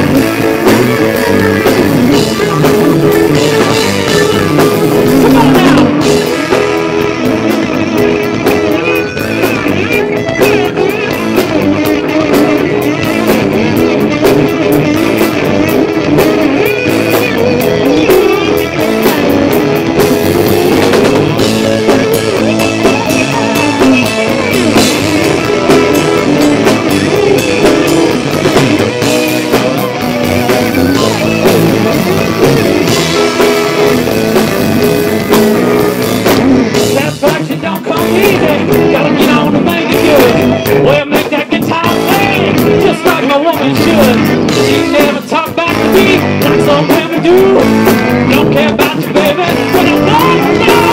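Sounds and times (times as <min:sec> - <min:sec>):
bass guitar: 0:00.0 - 0:50.9
drum kit: 0:00.0 - 0:50.9
electric guitar: 0:00.0 - 0:50.9.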